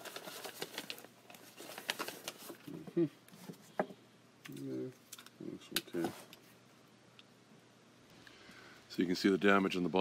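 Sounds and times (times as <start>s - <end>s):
bubble wrap crinkling: 0.0s - 2.8s.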